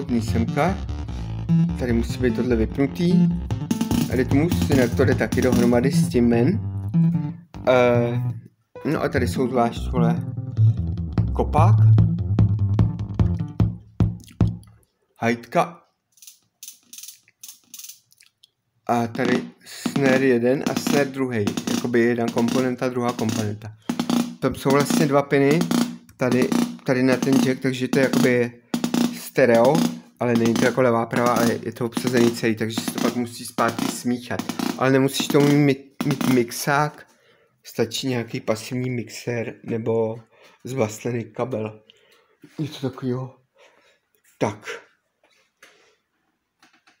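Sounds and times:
electronic hi-hat ticks: 0.0 - 7.8, 9.8 - 11.4, 19.8 - 36.4.

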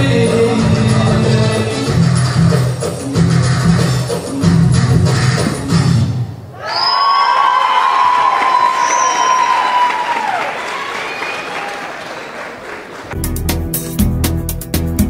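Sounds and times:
belly-dance music with drum beat: 0.0 - 6.0, 13.2 - 15.0
audience applauding and cheering: 6.6 - 13.2
short whistles: 8.7 - 9.5.

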